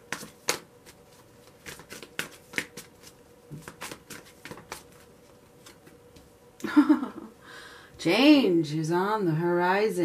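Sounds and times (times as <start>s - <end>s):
cards being shuffled: 0.0s - 6.0s.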